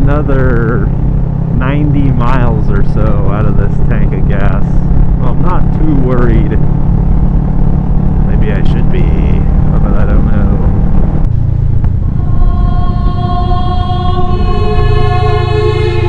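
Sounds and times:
motorcycle engine: 0.0 - 16.0
wind noise: 0.0 - 16.0
choir music: 12.0 - 16.0.

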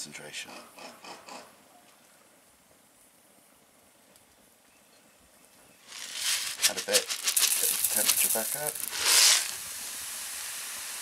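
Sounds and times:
crystals sizzling in hot liquid: 5.9 - 11.0.

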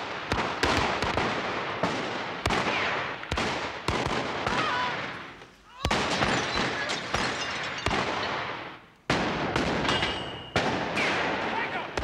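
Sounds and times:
handgun shots echoing: 9.5 - 11.5.

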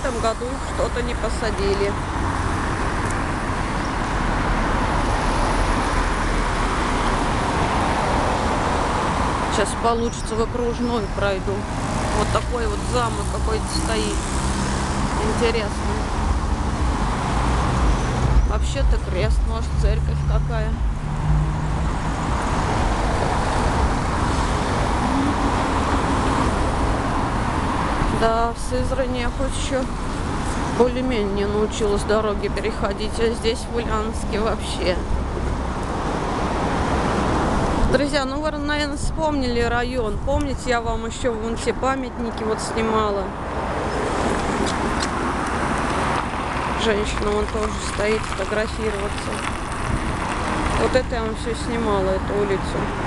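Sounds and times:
cars passing: 0.0 - 53.0.

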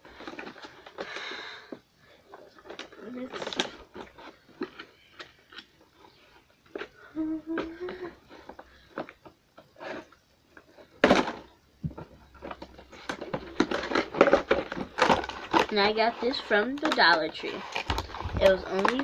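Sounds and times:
cardboard box rustling: 11.2 - 19.0.

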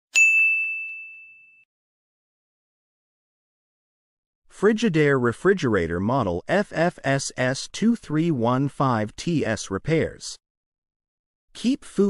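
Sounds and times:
bright bell ding: 0.1 - 1.7.

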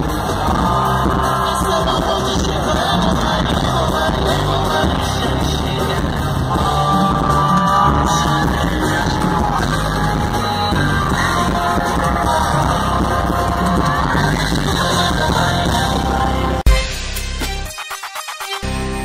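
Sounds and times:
crowd yelling: 0.0 - 16.6
person singing: 0.0 - 16.7
live band playing: 0.0 - 19.0.

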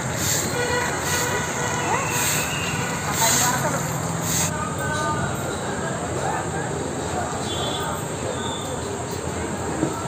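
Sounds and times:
traffic and bus noise: 0.0 - 10.0.

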